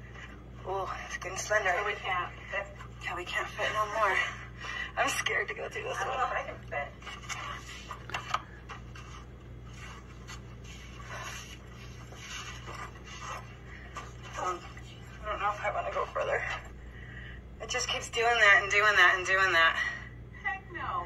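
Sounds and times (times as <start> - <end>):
steady low hum: 0.0 - 21.0
rustling and scraping against rock: 7.0 - 16.8.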